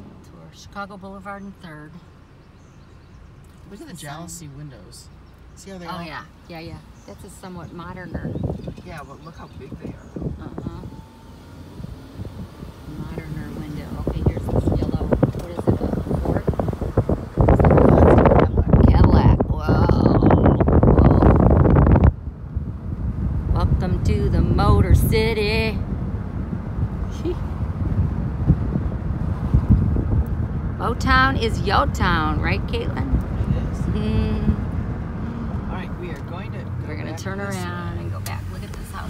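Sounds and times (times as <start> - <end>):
car rumble inside cabin: 0.0 - 39.0
wind buffeting microphone: 5.8 - 39.0.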